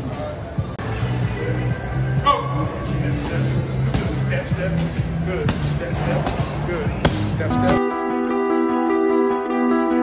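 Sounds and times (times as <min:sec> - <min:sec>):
background music with bass: 0:00.0 - 0:10.0
balls slapping hands: 0:07.0 - 0:07.8.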